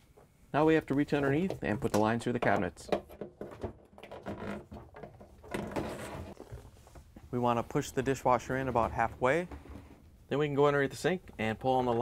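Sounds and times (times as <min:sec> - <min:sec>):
scraping and rustling: 0:04.1 - 0:07.2.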